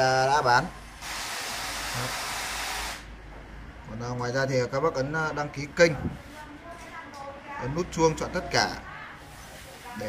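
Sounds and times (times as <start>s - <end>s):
steady white noise hiss: 0.0s - 10.0s.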